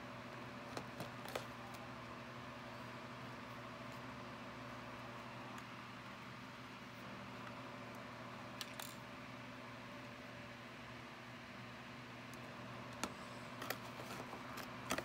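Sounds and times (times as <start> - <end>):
low mechanical hum: 0.0 - 15.0.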